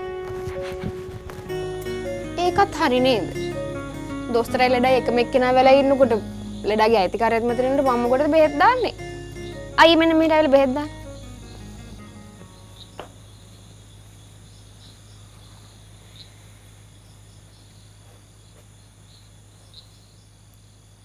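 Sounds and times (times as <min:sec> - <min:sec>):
crickets chirping: 0:01.2 - 0:21.0.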